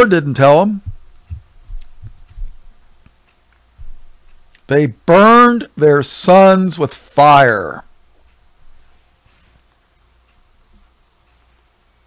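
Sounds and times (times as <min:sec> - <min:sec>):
soft low thumps: 0:00.6 - 0:03.1, 0:03.7 - 0:04.6.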